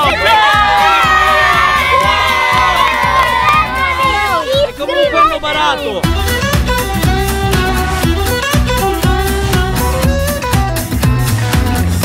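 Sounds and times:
boys shouting and cheering: 0:00.0 - 0:06.3.

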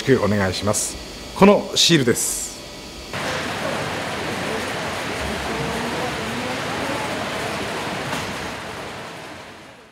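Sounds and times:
conveyor line running: 0:00.0 - 0:09.9.

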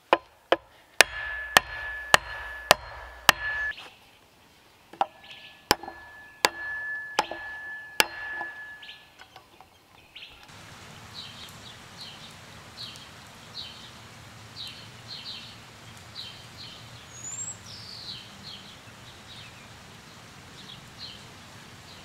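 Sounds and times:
axe striking wooden post: 0:00.0 - 0:03.7, 0:05.0 - 0:09.0.

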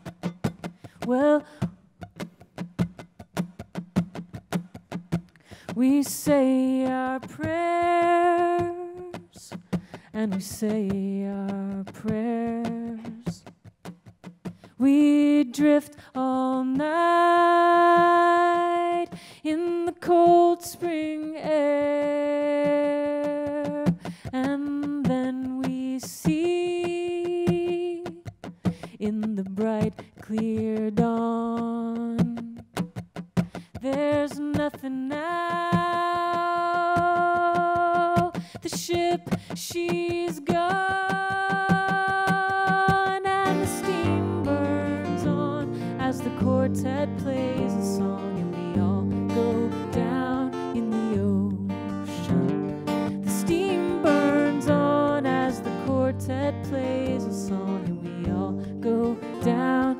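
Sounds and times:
woman singing slow melody: 0:01.0 - 0:01.7, 0:05.7 - 0:13.4, 0:14.8 - 0:28.3, 0:28.9 - 0:32.6, 0:33.8 - 0:59.9.

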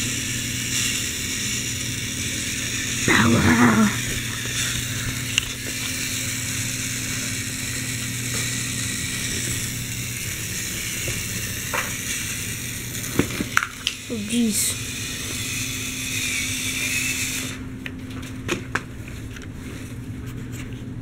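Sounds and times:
toy electric motor whirring: 0:00.0 - 0:17.7.

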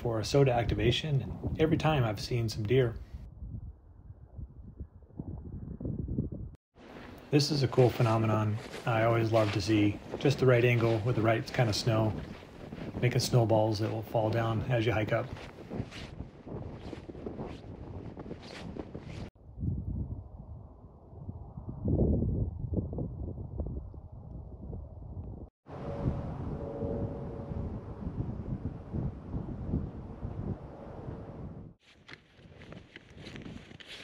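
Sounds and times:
wind buffeting microphone: 0:00.0 - 0:06.6, 0:07.2 - 0:31.8
footsteps crunching through snow: 0:06.8 - 0:19.3, 0:31.8 - 0:34.0.

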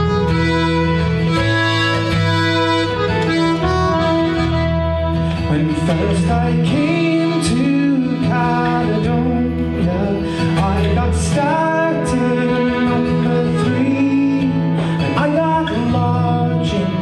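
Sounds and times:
folk band playing: 0:00.0 - 0:17.0
man singing: 0:05.3 - 0:17.0.

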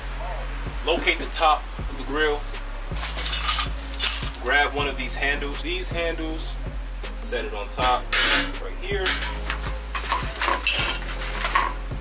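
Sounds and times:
metal parts clinking: 0:03.0 - 0:04.4, 0:08.1 - 0:11.8.

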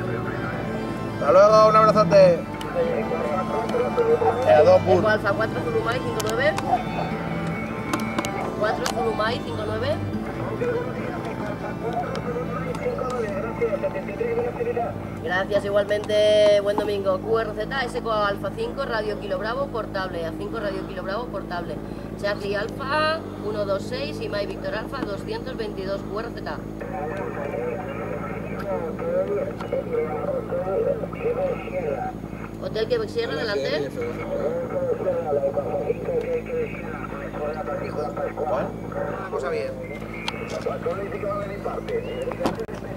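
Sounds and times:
steady low hum: 0:00.0 - 0:42.9
voice through radio speaker: 0:10.4 - 0:15.2, 0:25.5 - 0:42.9.

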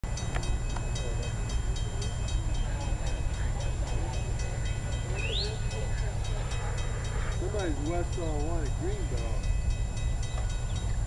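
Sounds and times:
crossing warning bell ringing: 0:00.0 - 0:11.0.

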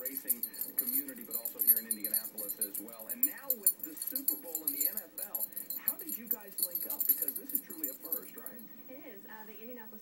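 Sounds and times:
metal collar tags jingling: 0:00.0 - 0:08.7.

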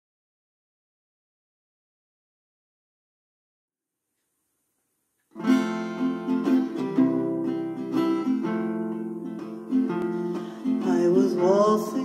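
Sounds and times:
acoustic guitar picking and strumming: 0:05.3 - 0:12.0.

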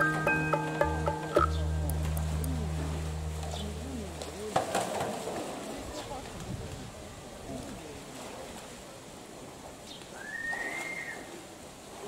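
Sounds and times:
steady low hum: 0:00.0 - 0:04.7
murmur of voices: 0:01.4 - 0:09.2.

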